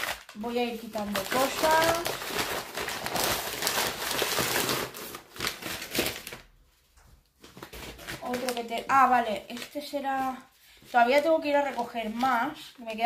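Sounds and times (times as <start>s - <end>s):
paper crumpling and rustling: 0.0s - 6.6s, 7.4s - 13.0s.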